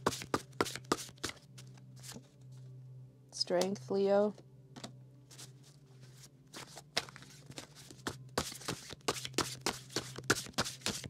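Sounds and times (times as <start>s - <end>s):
cards being shuffled: 0.0s - 2.3s, 5.3s - 11.0s.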